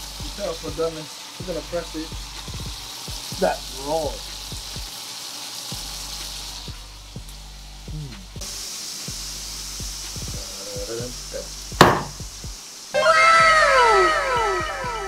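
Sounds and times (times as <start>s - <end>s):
steak sizzling in a frying pan: 0.0s - 15.0s
sharp knock: 11.8s - 12.2s.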